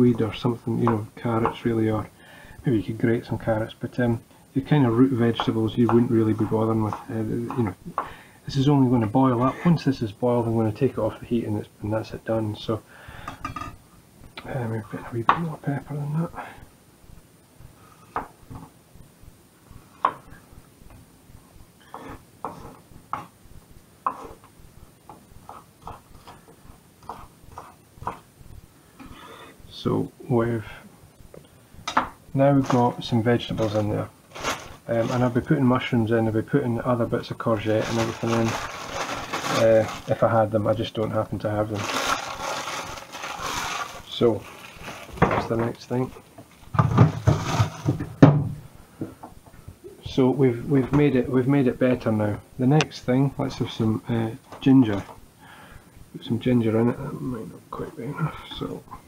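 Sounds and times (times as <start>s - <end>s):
rustling packaging and shelves knocking: 31.8s - 35.8s, 37.6s - 40.4s, 41.6s - 49.4s.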